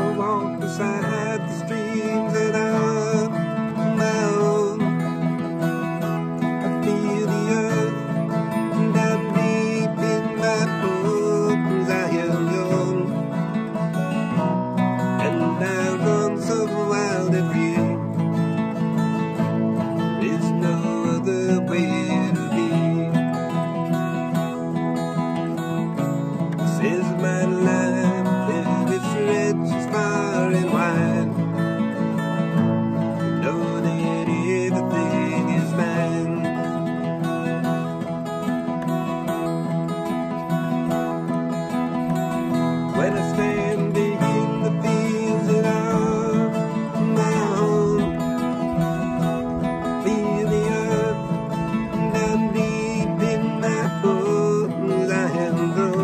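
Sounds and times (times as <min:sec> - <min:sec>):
acoustic guitars strummed: 0:00.0 - 0:56.0.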